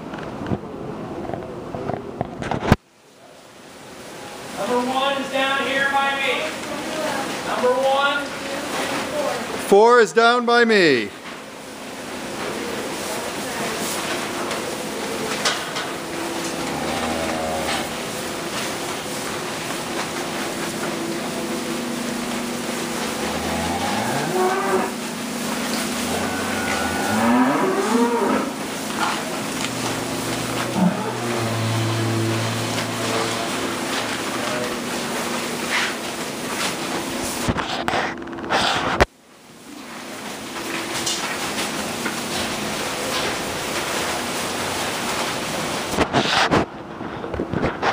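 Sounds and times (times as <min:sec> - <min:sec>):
barn fan hum: 0:03.2 - 0:47.9
cows mooing: 0:16.2 - 0:18.6, 0:22.1 - 0:34.2.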